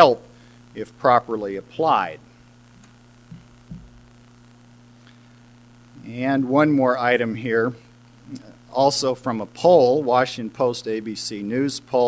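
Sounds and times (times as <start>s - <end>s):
low electrical hum: 0.0s - 12.0s
faint soft thumps: 3.3s - 4.0s.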